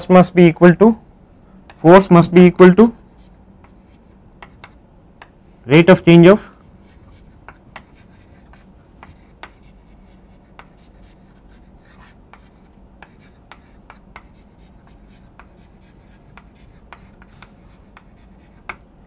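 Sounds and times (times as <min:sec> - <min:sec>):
low steady hum: 0:00.0 - 0:19.0
chalk tapping and scraping: 0:01.7 - 0:18.8.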